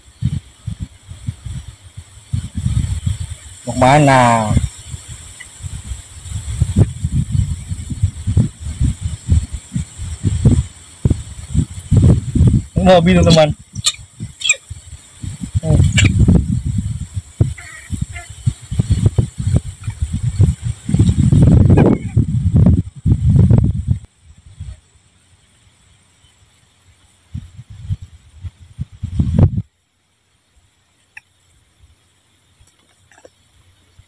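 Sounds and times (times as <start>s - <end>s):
microphone buffeting: 0.0s - 24.8s, 27.3s - 29.7s.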